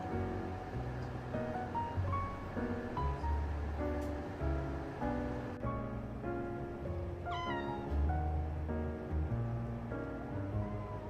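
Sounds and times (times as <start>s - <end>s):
light background music: 0.0s - 11.0s
cat meowing: 7.3s - 8.0s, 10.5s - 11.0s.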